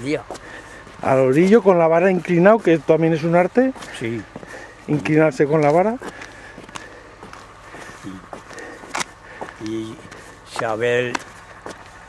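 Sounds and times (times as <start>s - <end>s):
footsteps on dirt track: 0.0s - 12.0s.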